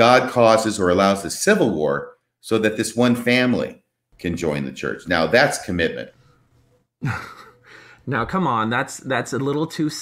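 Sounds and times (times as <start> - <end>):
man's breathy laugh: 7.0 - 7.9.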